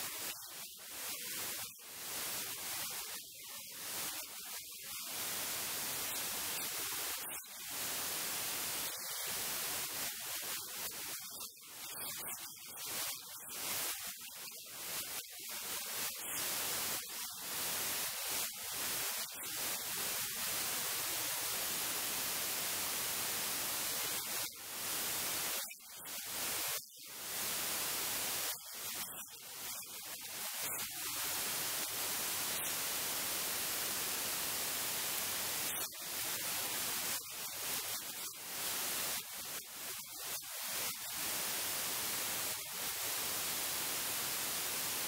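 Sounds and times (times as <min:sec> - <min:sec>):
static hiss: 0:00.0 - 0:45.0.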